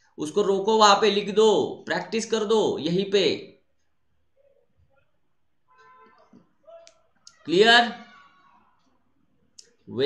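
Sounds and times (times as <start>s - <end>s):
man speaking: 0.1s - 3.6s, 6.6s - 8.1s.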